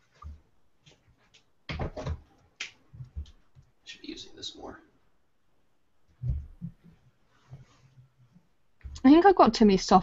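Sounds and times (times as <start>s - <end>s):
desk handling clicks and knocks: 1.3s - 3.4s.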